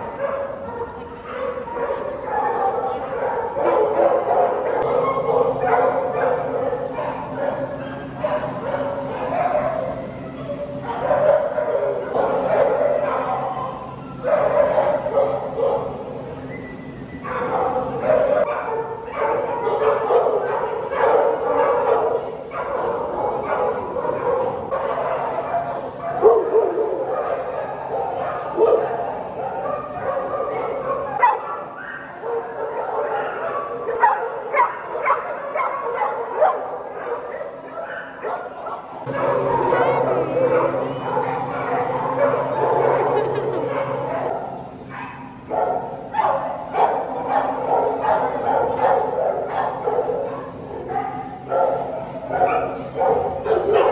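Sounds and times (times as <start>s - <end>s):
dogs barking and yipping: 0.0s - 53.9s
low steady hum: 39.0s - 53.9s.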